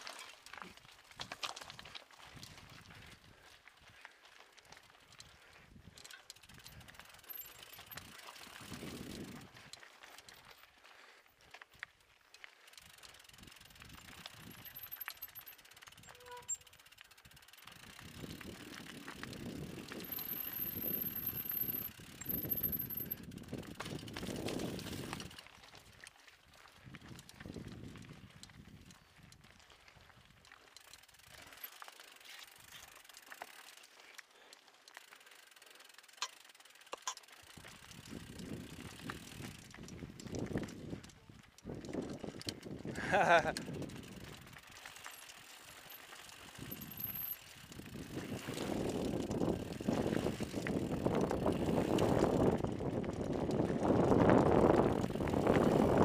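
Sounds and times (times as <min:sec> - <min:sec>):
tyres crunching over gravel: 0:00.0 - 0:16.1, 0:16.7 - 0:56.0
bike rattling: 0:00.0 - 0:56.0
freewheel ticking: 0:05.8 - 0:10.6, 0:11.7 - 0:26.2, 0:30.2 - 0:56.0.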